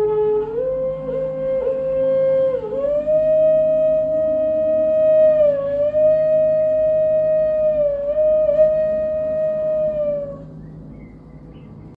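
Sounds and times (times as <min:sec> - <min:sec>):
bamboo flute long note: 0:00.0 - 0:10.8.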